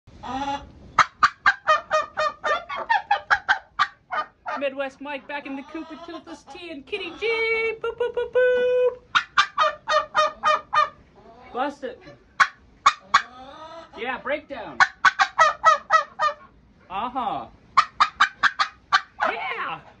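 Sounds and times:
turkey gobbling: 0.2 - 4.7, 5.4 - 7.4, 9.0 - 14.0, 14.8 - 16.6, 17.8 - 19.5.

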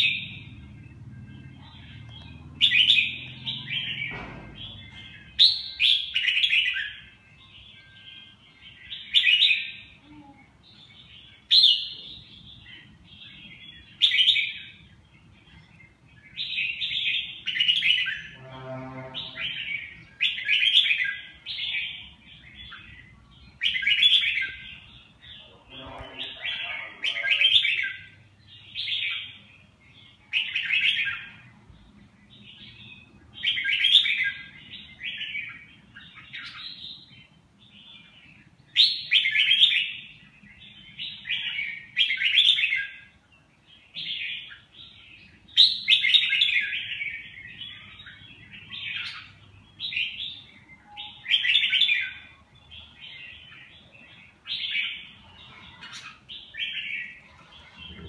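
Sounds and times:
bird chirping phrases: 0.0 - 58.0.

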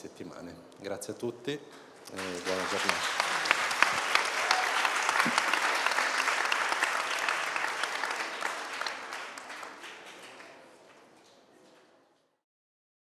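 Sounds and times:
many hands clapping: 2.1 - 11.9.

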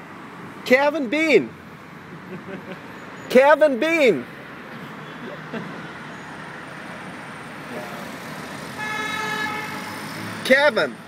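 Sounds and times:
street traffic noise: 0.0 - 11.0
car horn: 8.7 - 10.3.

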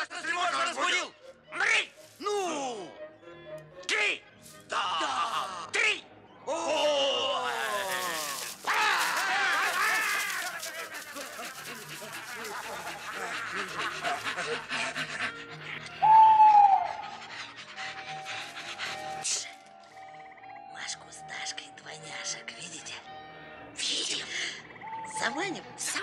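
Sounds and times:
fairy-tale film music: 0.0 - 26.0
hooting and wailing cries: 6.4 - 19.2
rustling: 7.5 - 14.3.

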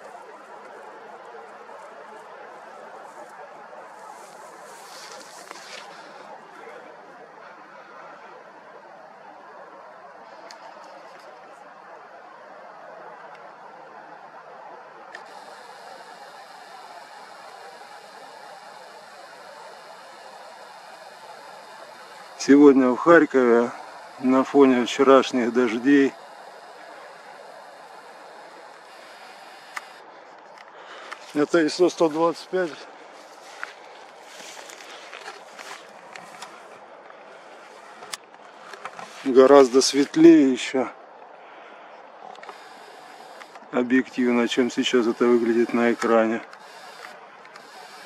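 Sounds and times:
faint even hiss: 15.1 - 40.8, 42.2 - 48.0.

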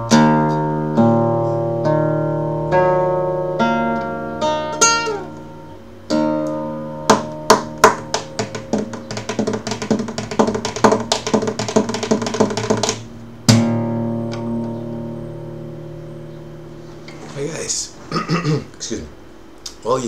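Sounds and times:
flamenco guitar strumming: 0.0 - 17.2.

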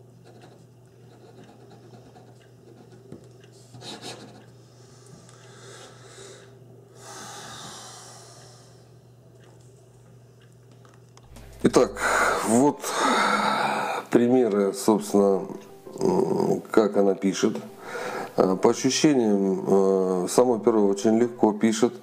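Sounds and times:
pen nib scratching on paper: 0.2 - 3.0, 3.7 - 4.4.

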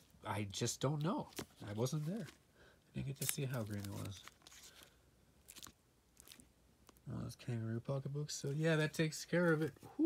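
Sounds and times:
paperback book being handled: 0.8 - 7.0.

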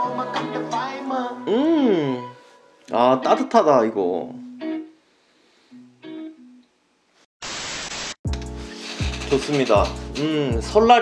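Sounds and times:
plucked guitar notes: 4.3 - 4.9
static hiss burst: 7.4 - 8.2.

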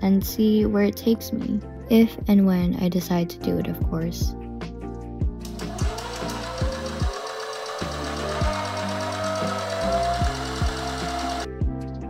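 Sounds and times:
sewing machine running: 5.5 - 11.5
lo-fi music with kick drum: 9.9 - 12.0.

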